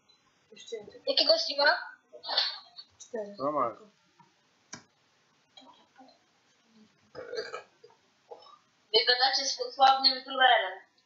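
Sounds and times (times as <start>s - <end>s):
throaty vocal sound: 7.2s - 7.6s.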